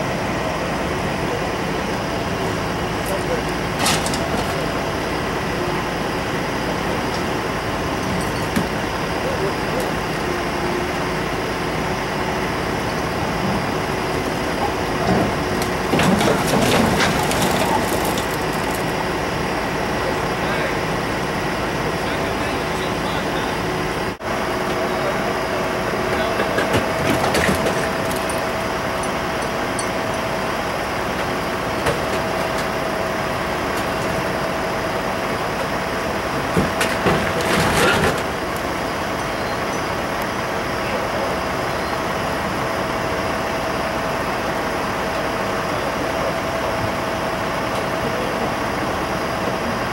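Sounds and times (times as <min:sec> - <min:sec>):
engine hum: 0:00.0 - 0:49.9
street traffic noise: 0:00.0 - 0:49.9
faint voices: 0:00.4 - 0:07.8, 0:08.6 - 0:11.2, 0:21.7 - 0:24.0, 0:24.6 - 0:28.6, 0:39.6 - 0:42.2, 0:44.9 - 0:49.9.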